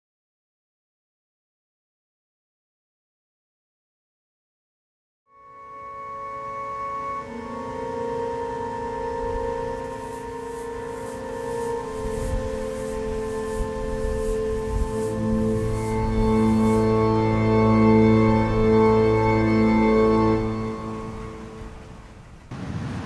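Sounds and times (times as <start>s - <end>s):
organ playing held chords: 5.3s - 22.1s.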